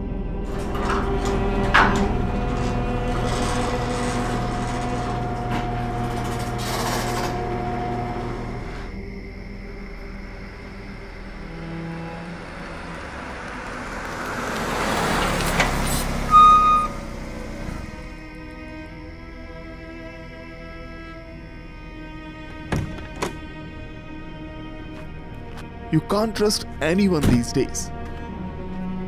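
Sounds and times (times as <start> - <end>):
low drone with held tones: 0.0 - 14.1
car approaching: 0.1 - 21.8.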